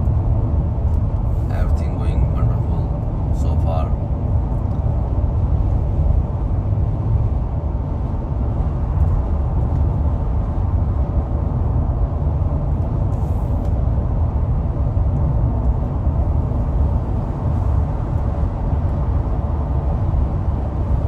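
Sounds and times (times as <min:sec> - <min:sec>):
car road noise at highway speed: 0:00.0 - 0:21.0.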